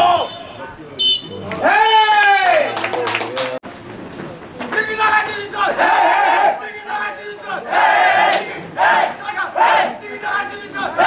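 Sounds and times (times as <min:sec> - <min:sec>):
team shouting chant in unison: 0:05.4 - 0:11.0.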